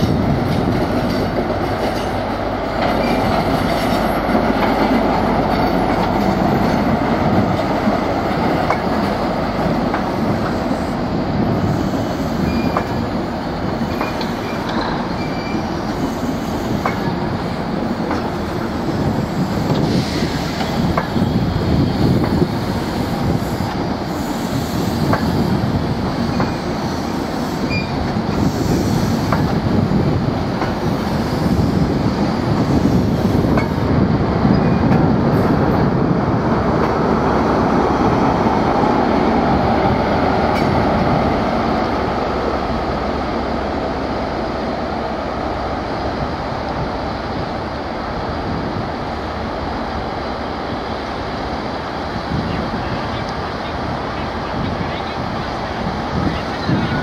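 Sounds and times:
diesel train engine passing: 0:00.0 - 0:57.0
train coaches rumbling over rails: 0:00.0 - 0:57.0
faint wheel squeal: 0:15.2 - 0:15.6.

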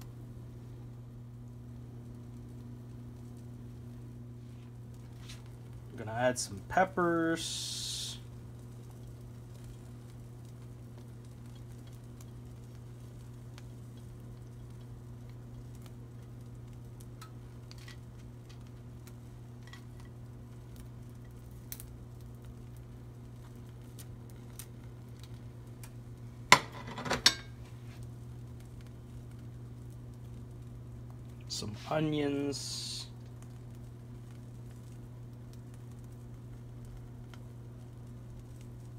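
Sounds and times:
low steady hum: 0:00.0 - 0:38.9
kitchenware clattering: 0:26.6 - 0:27.5.

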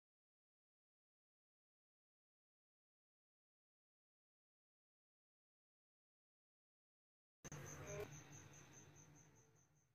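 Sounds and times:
high-pitched pulsing chirp: 0:07.5 - 0:09.9.

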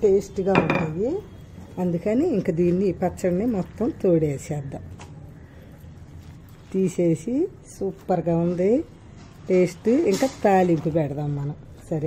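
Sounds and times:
woman talking: 0:00.0 - 0:04.9, 0:06.7 - 0:12.0.

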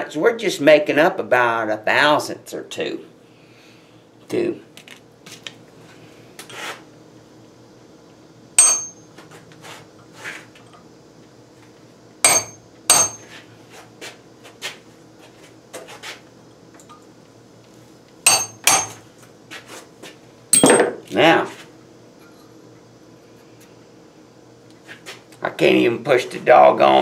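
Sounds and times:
hammer striking chisel on metal: 0:08.6 - 0:09.0, 0:12.2 - 0:13.3, 0:18.3 - 0:19.0.

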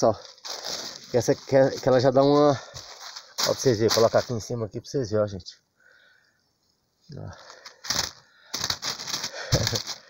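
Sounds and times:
plastic bag crinkling: 0:00.0 - 0:04.4, 0:07.4 - 0:10.0.

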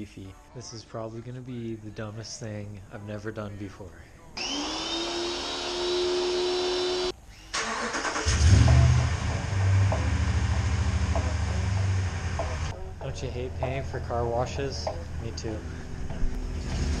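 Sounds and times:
small motor whining: 0:04.4 - 0:07.5
truck engine starting and idling: 0:07.5 - 0:12.7.

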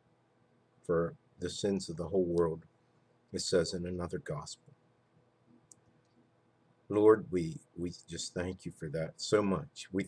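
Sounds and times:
man's voice: 0:00.9 - 0:02.6, 0:03.4 - 0:04.6, 0:06.9 - 0:10.0.

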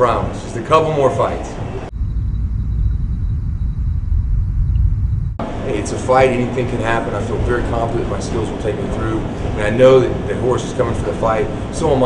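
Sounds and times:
deep steady rumble: 0:01.6 - 0:12.0.

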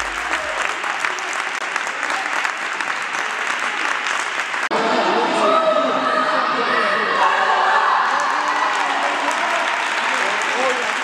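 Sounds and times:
group applause: 0:00.0 - 0:04.7, 0:07.8 - 0:11.0.

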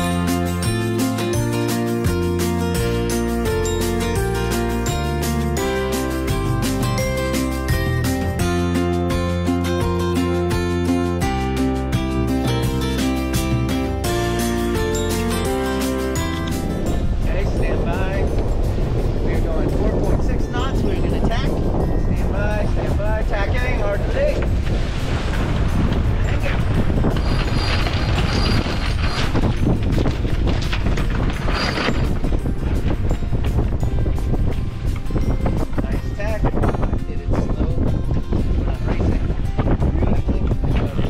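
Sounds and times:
water rushing along hull: 0:00.0 - 0:41.0
wind buffeting microphone: 0:16.2 - 0:41.0.

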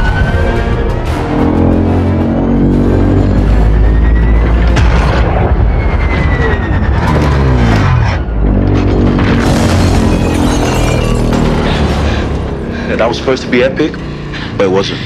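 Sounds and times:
orchestral film score: 0:00.0 - 0:15.0
robot clanks and crashes: 0:08.6 - 0:11.9.

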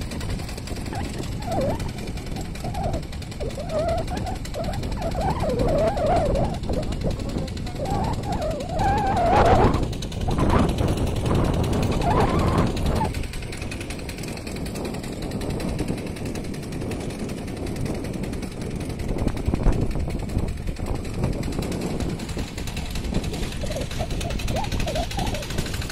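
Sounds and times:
small engine running: 0:00.0 - 0:25.9.

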